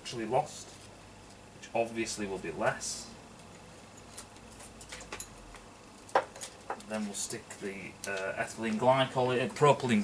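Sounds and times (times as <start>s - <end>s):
small items knocking on workbench: 4.8s - 6.9s.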